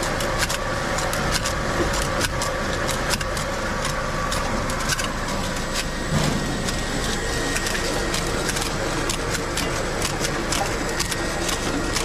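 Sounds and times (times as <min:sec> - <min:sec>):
labeling machine humming: 0:00.0 - 0:12.0
machine clicks and ticks: 0:00.0 - 0:12.0.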